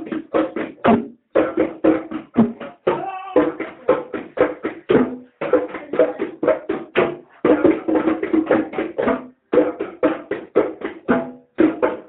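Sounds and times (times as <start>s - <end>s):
bongos struck by hand: 0.0s - 12.0s.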